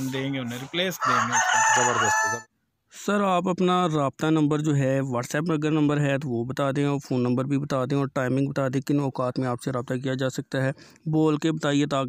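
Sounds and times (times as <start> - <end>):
rooster crowing: 0.4 - 2.5.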